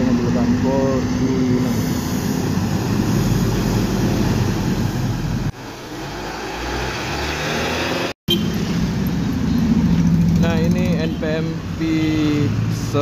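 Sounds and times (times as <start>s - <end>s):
diesel engine rumble: 0.0s - 6.0s, 8.6s - 13.0s
road noise: 0.0s - 13.0s.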